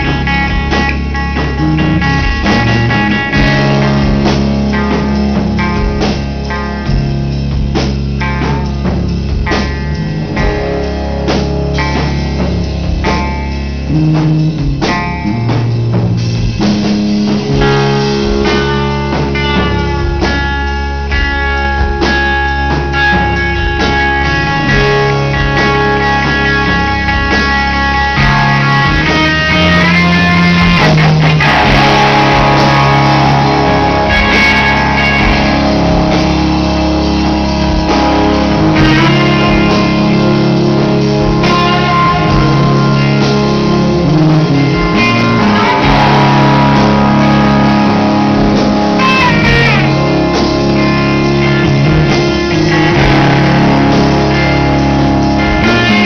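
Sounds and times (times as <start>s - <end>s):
live rock band playing: 0.0s - 56.0s.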